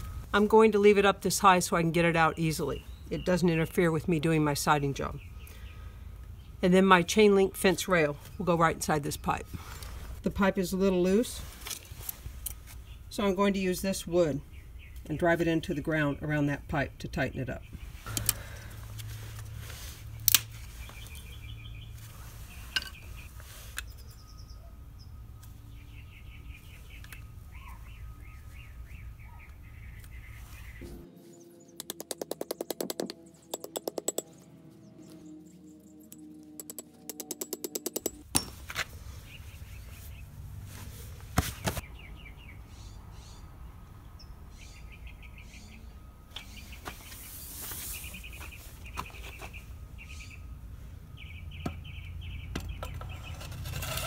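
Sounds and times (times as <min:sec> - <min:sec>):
hammer striking wooden stakes: 0:31.8 - 0:34.3, 0:36.6 - 0:38.7.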